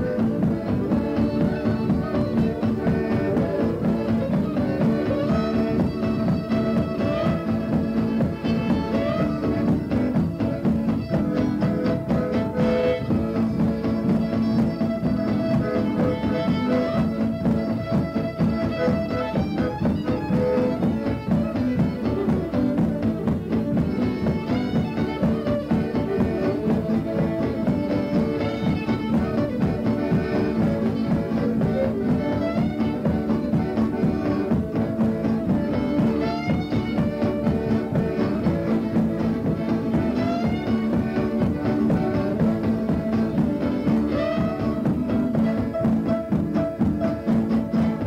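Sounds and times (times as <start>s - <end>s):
accordion: 0.0s - 48.0s
fiddle playing dance tune: 0.0s - 48.0s
guitar: 0.0s - 48.0s.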